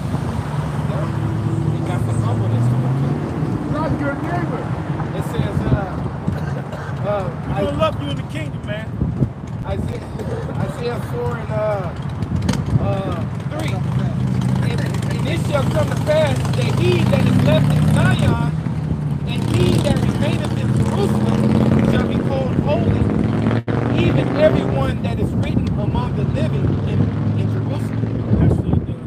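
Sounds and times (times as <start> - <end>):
people talking: 0.8 - 2.8, 3.7 - 6.0, 6.7 - 8.9, 9.6 - 12.0, 12.8 - 18.6, 19.3 - 23.1, 23.9 - 29.0.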